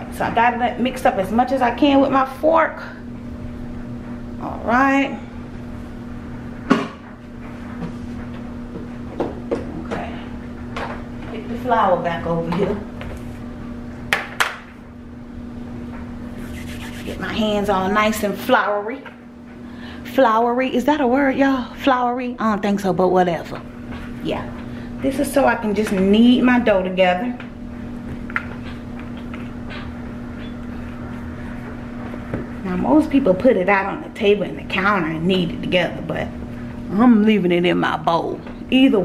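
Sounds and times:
steady low hum: 0:00.0 - 0:39.0
dough squishing: 0:16.4 - 0:17.2.

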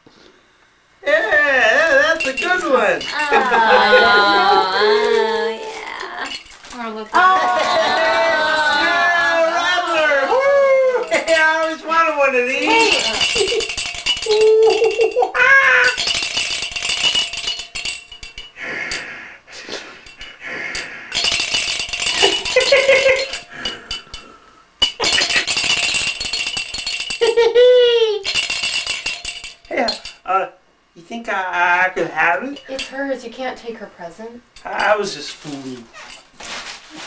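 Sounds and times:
toy rattle shaken: 0:01.8 - 0:05.3, 0:11.0 - 0:11.7, 0:12.4 - 0:19.0, 0:21.1 - 0:24.2, 0:24.8 - 0:27.5, 0:28.2 - 0:30.2
man laughing and exclaiming: 0:03.1 - 0:05.7, 0:07.2 - 0:11.6, 0:14.3 - 0:16.0, 0:27.2 - 0:28.3.

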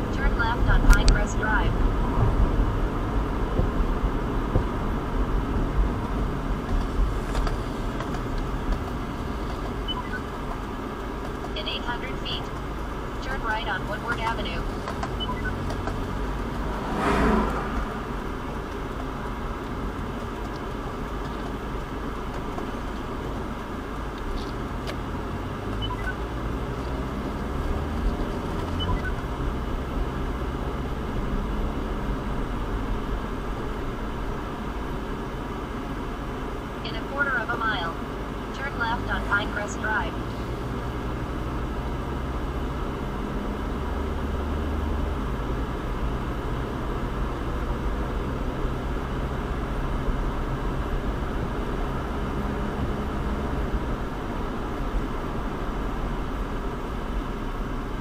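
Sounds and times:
car engine and tyre rumble: 0:00.0 - 0:58.0.

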